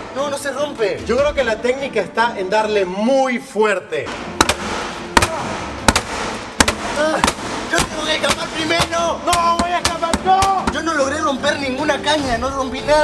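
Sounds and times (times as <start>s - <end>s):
hammer striking bamboo canes: 4.1s - 10.9s.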